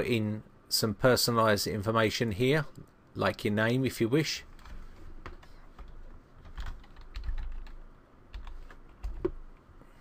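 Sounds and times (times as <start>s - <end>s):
typing on computer keyboard: 4.6s - 9.4s.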